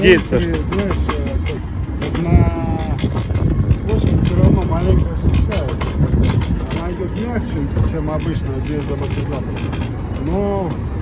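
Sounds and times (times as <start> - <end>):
indistinct voices: 0.0 - 11.0
steady low rumble: 0.0 - 11.0
traffic going by: 0.0 - 11.0.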